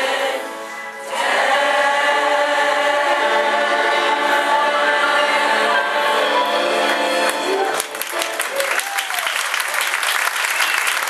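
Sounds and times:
choir of women and girls singing: 0.0 - 7.3.

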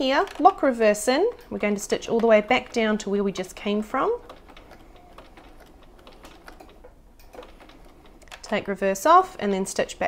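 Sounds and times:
sewing machine stitching: 0.0 - 10.0.

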